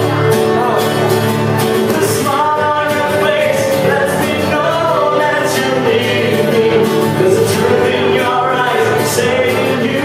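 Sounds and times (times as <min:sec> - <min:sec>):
strummed acoustic guitar: 0:00.0 - 0:10.0
man singing into microphone: 0:01.8 - 0:10.0.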